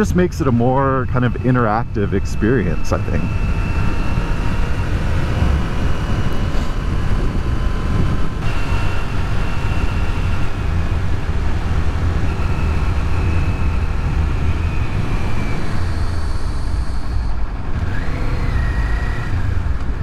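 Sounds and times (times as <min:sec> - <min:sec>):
motorcycle engine running: 0:00.0 - 0:20.0
wind rush on microphone: 0:00.0 - 0:20.0.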